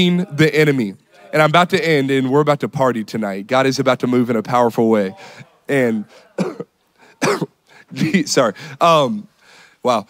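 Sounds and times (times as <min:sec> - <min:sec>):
man coughing: 0:06.2 - 0:07.6.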